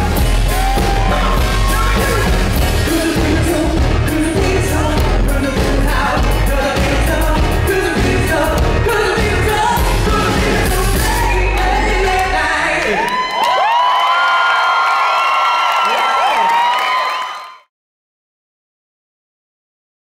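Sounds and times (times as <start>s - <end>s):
audience screaming and whooping: 0.0s - 3.5s, 9.2s - 17.7s
live pop-rock band: 0.0s - 13.0s
man singing into microphone: 1.0s - 13.2s.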